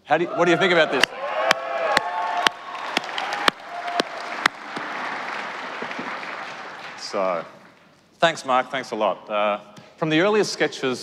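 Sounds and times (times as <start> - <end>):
audience applauding in large hall: 0.6 - 7.9.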